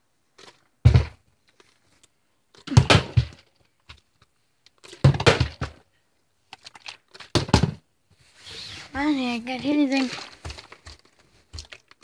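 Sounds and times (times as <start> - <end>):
plastic bottle landing with knocks: 0.8 - 1.2, 2.6 - 3.5, 5.0 - 5.8, 7.3 - 7.8.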